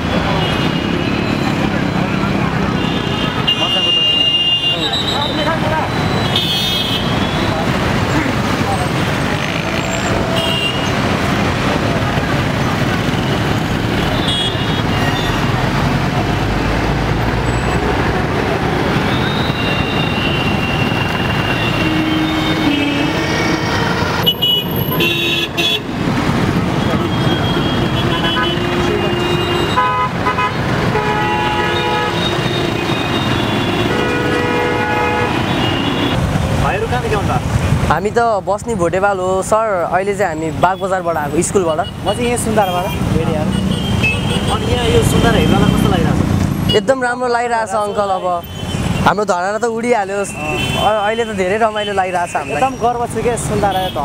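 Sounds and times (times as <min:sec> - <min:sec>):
car horns honking: 0:00.0 - 0:11.5, 0:12.4 - 0:15.6, 0:17.4 - 0:36.4, 0:40.6 - 0:47.0, 0:50.2 - 0:54.0
motorcycles and cars in traffic: 0:00.0 - 0:54.0.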